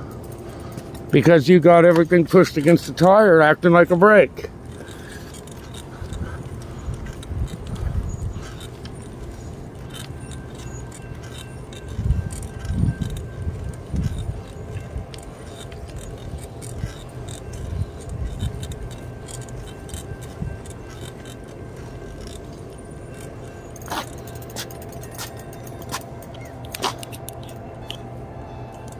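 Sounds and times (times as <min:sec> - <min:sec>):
bicycle rattling and jangling: 0:00.0 - 0:28.9
wind on microphone: 0:06.0 - 0:08.7, 0:11.8 - 0:15.3.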